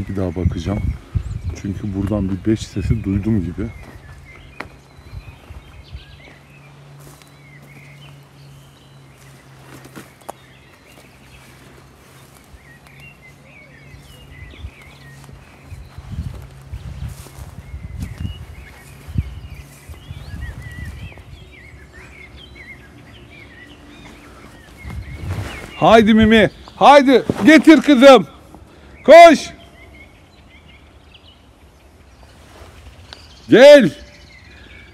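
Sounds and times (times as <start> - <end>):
rustling through undergrowth: 0.0 - 29.0, 29.7 - 34.9
small birds chirping and singing: 0.0 - 34.9
footsteps: 3.7 - 4.8, 5.4 - 22.2, 23.8 - 28.6.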